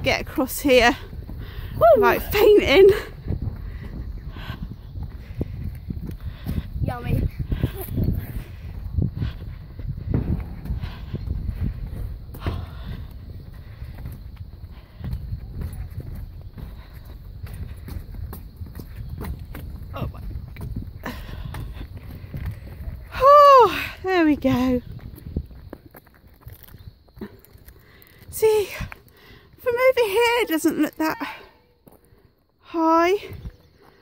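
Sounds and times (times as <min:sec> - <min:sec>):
footsteps on steel deck: 0:00.0 - 0:31.0
low rumble: 0:03.0 - 0:23.2.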